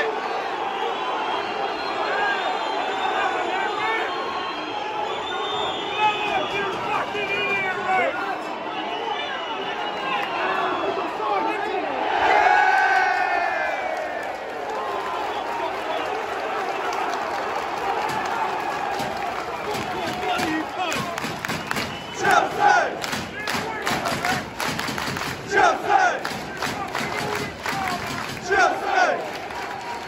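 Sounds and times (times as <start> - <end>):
stadium crowd cheering and singing: 0.0 - 30.0
fans clapping close by: 5.1 - 8.2, 12.6 - 30.0
crowd shouting chant: 22.0 - 30.0.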